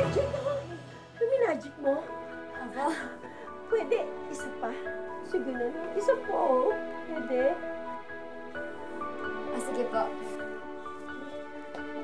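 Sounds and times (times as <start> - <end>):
background music chords: 0.0 - 12.0.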